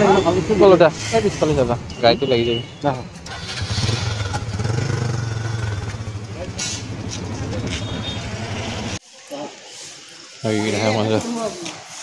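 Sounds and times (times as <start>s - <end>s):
street voices: 0.0s - 12.0s
motorcycle engine running: 3.5s - 8.5s.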